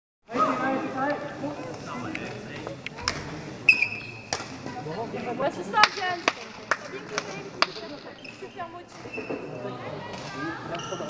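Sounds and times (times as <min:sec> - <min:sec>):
rackets hitting shuttlecock: 0:03.0 - 0:04.7.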